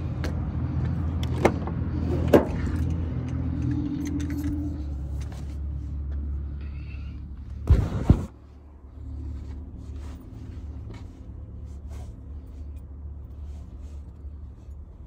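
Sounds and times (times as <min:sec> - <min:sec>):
low engine hum: 0:00.0 - 0:15.0.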